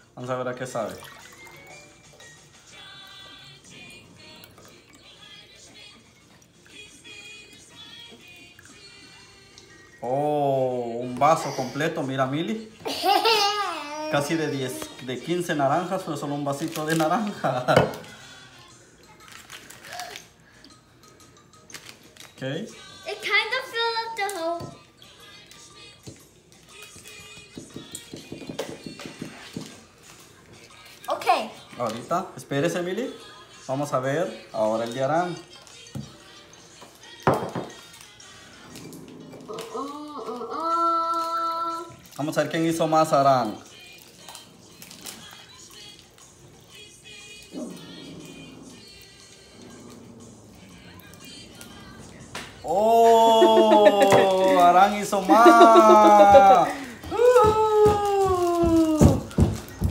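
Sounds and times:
quiet music: 0.0 - 59.9
juice trickling into a glass: 0.6 - 3.6
person singing gliding phrase: 52.6 - 54.6, 55.3 - 59.2.

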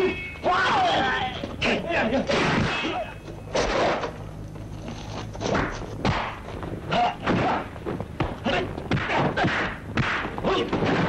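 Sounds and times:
heavy punch and kick impacts: 8.2 - 11.0.

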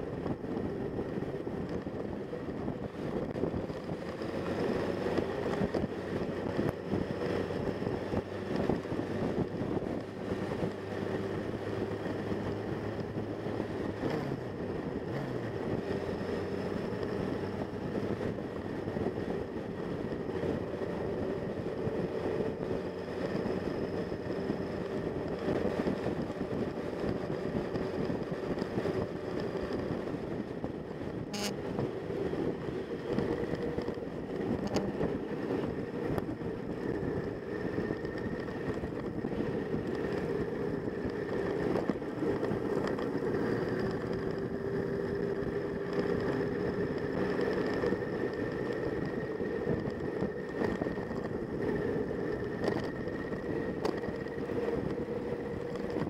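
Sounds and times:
motorcycle engine running: 0.0 - 56.0
wind rushing over microphone: 0.0 - 56.0.

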